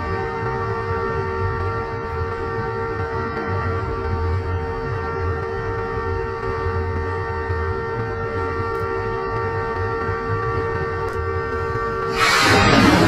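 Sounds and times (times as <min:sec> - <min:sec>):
locomotive air horn blast: 0:12.1 - 0:13.0
low rumble: 0:12.1 - 0:13.0.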